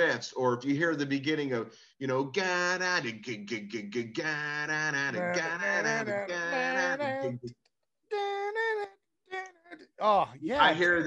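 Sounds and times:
man singing without words: 5.0 - 7.5.

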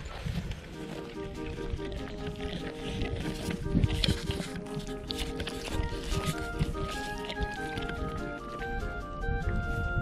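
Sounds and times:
foal tearing and chewing grass: 0.0 - 10.0
background music with sustained notes: 0.2 - 10.0.

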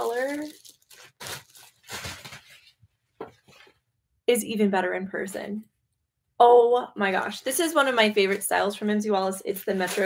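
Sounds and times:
plastic packaging rustling: 0.0 - 2.9, 9.5 - 10.0.

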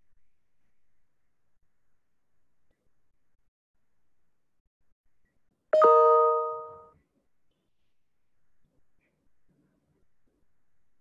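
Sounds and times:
two-tone notification chime: 5.8 - 6.8.

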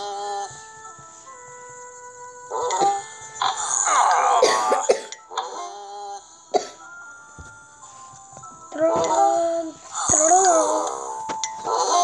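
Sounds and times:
soft background music: 0.0 - 12.0
child coughing: 2.7 - 3.0, 4.2 - 5.7, 6.5 - 6.8.

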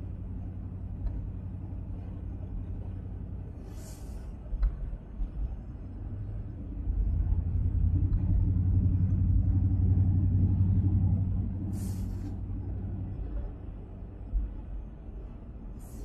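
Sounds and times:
car engine and road drone: 0.0 - 16.0.

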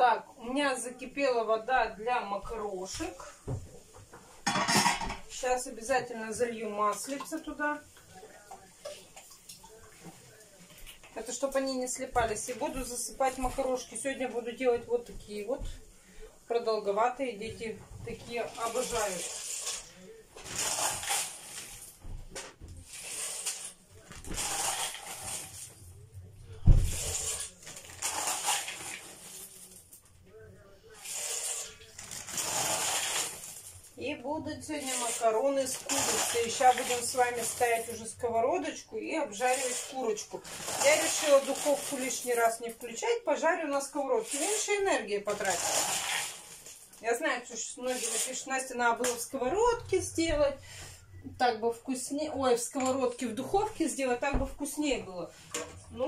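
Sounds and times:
dry pasta pouring into water: 18.5 - 22.0, 22.8 - 25.7, 27.0 - 29.8, 31.0 - 33.9, 34.8 - 37.9, 39.3 - 42.4, 45.3 - 47.0, 47.9 - 48.4.

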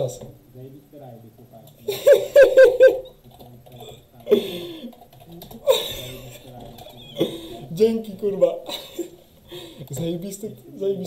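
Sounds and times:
man laughing loudly: 1.9 - 3.1.

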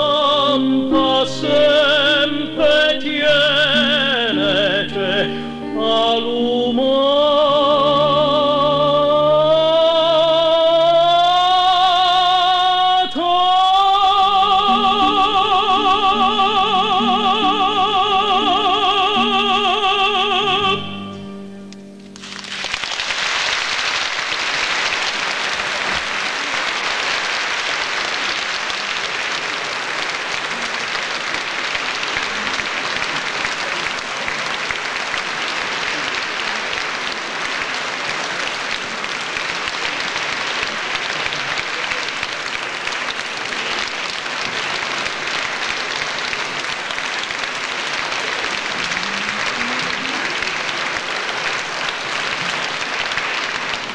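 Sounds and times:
audience applauding: 22.1 - 53.9.

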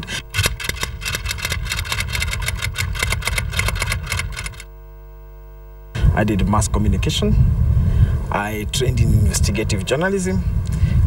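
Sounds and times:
small engine running: 0.0 - 4.7
steady hum: 0.0 - 11.0.

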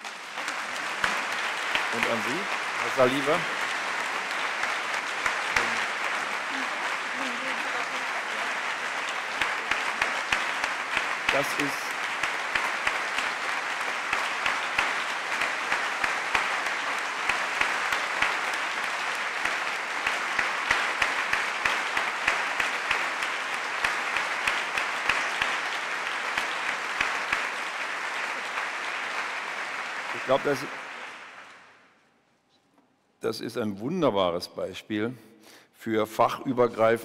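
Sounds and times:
audience applauding: 0.0 - 32.0.

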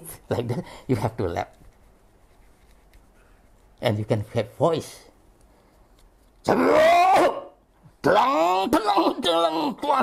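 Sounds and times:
man's drawn-out cry: 6.5 - 10.0.

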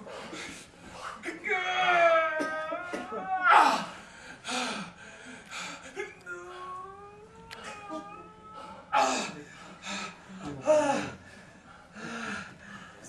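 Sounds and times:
man moaning: 1.5 - 4.0, 6.0 - 9.4.

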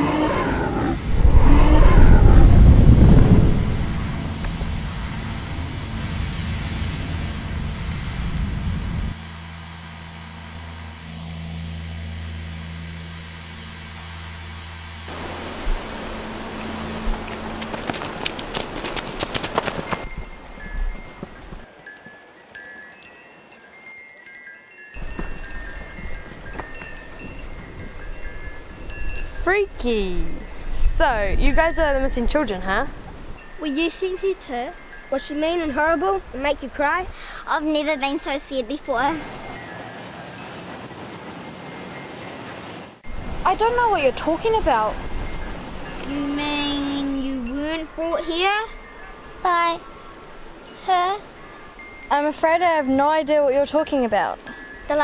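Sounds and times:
loud rumbling swell: 0.6 - 17.6
steady low drone: 1.0 - 17.7
wind chimes tinkling: 19.6 - 55.0.

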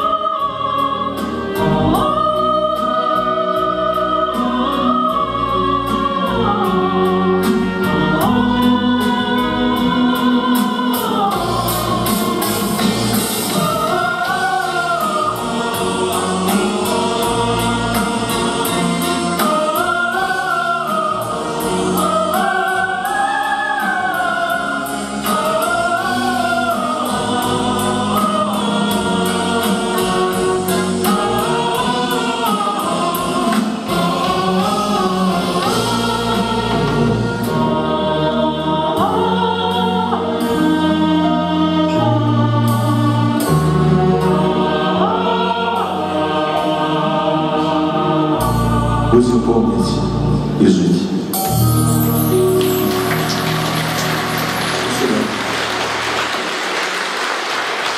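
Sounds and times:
mixed choir singing: 0.0 - 57.9.

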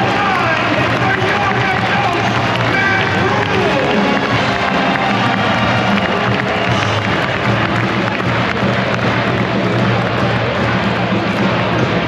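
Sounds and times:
crowd noise: 0.0 - 12.0
loud music in an arena: 0.0 - 12.0.

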